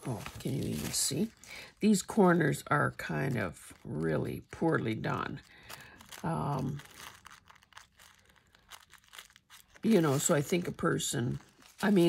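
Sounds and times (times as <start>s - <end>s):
tissue paper rustling: 0.0s - 2.4s, 3.0s - 12.0s
woman speaking: 0.0s - 5.4s, 6.2s - 6.9s, 9.8s - 12.0s.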